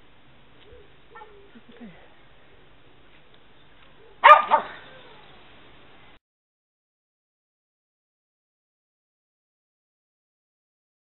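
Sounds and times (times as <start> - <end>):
faint background hiss: 0.0 - 6.2
dog barking: 4.2 - 4.8.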